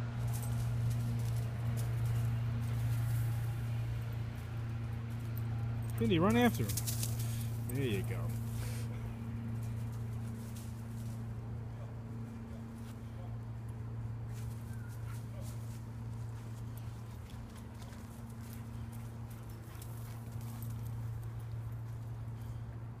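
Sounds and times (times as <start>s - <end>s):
low hum: 0.0s - 23.0s.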